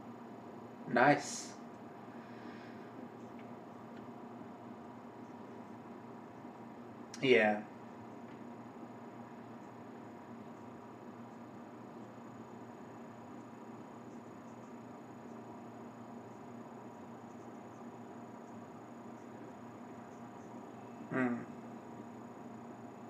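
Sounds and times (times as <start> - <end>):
faint steady hiss: 0.0 - 23.0.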